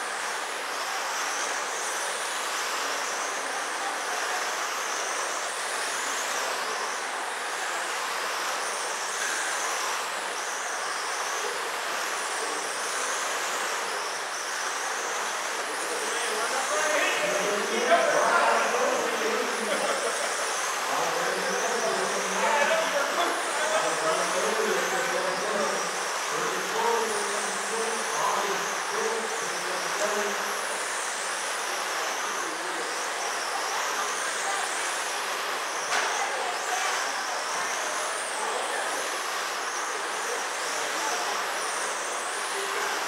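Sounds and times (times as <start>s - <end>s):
electric rc car motors whining: 0.0s - 43.0s.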